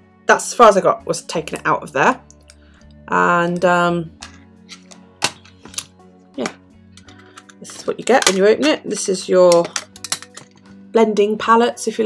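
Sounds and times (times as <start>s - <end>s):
metal tin clicks and taps: 4.2s - 10.7s.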